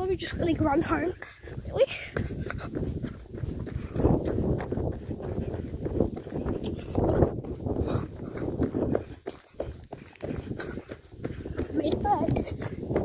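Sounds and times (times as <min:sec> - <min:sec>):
running footsteps thudding: 0:00.0 - 0:13.0
wind rumble on microphone: 0:00.0 - 0:13.0.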